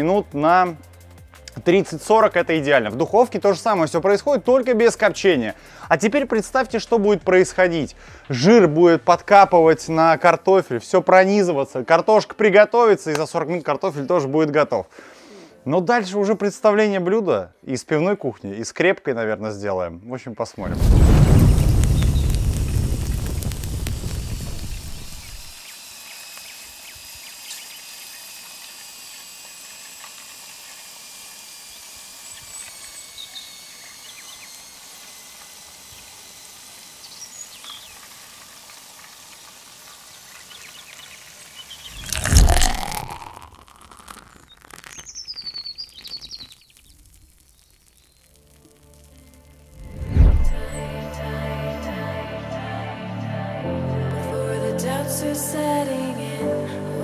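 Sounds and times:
deep boom: 0:20.6 - 0:24.5, 0:49.8 - 0:50.9
faint birdsong: 0:31.7 - 0:34.6, 0:37.0 - 0:38.0, 0:39.3 - 0:42.1, 0:44.3 - 0:48.4
loud whoosh: 0:41.9 - 0:43.2, 0:49.7 - 0:51.1.

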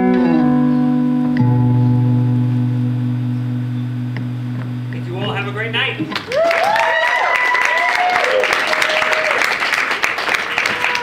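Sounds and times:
electric guitar chord ringing: 0:00.0 - 0:06.4.

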